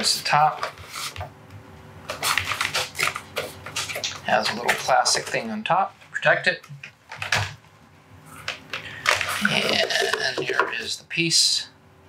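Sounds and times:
packaging crackling rustles: 2.1s - 4.2s.

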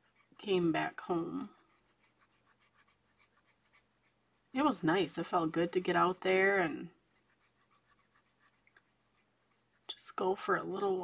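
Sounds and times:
marker scratching on paper: 0.0s - 11.0s.

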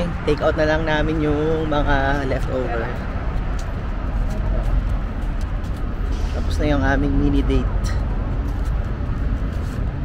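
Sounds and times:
freeway traffic rumble: 0.0s - 10.0s.

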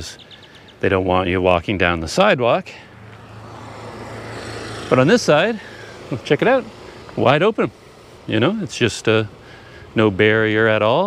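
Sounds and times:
motor scooter passing: 1.9s - 11.0s.

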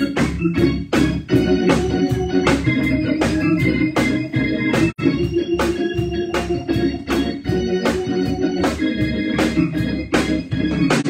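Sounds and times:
organ music with steady beat: 0.0s - 11.0s.

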